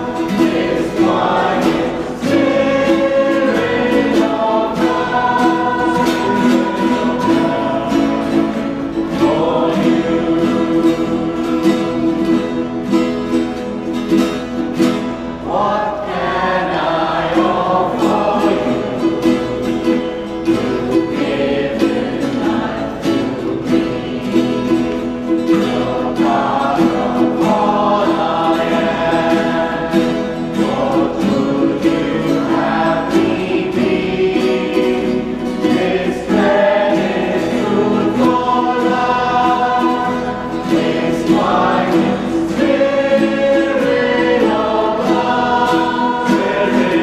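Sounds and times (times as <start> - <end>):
mixed choir singing a hymn: 0.0 - 47.0
strummed acoustic guitars: 0.0 - 47.0.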